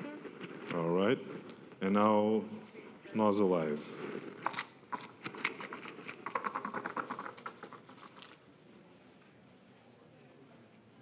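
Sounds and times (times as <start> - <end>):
raffle tickets rustling: 0.0 - 2.3, 3.2 - 8.5.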